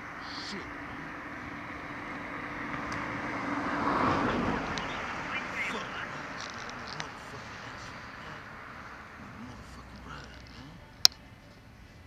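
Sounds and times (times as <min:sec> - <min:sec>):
vehicle passing: 0:00.0 - 0:12.0.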